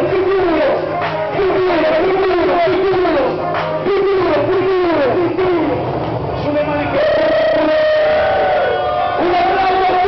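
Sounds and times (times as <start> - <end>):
man shouting into a microphone: 6.8 - 10.0.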